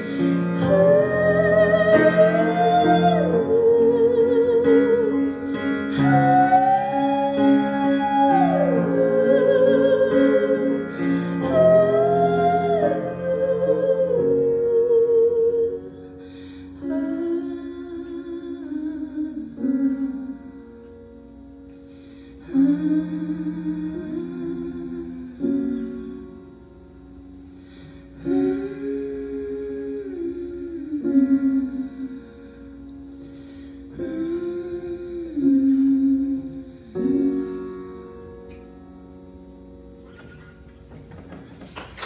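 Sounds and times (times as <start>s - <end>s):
woman singing with vibrato: 0.0s - 16.2s, 16.8s - 20.5s, 22.4s - 26.4s, 28.2s - 32.4s, 33.9s - 37.5s
piano chords: 0.0s - 42.0s
audience clapping: 40.9s - 42.0s.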